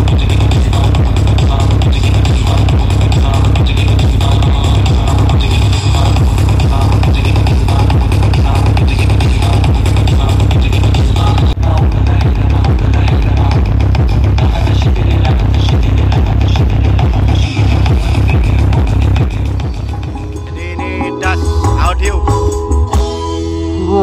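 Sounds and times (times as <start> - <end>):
electronic dance music: 0.0 - 23.3.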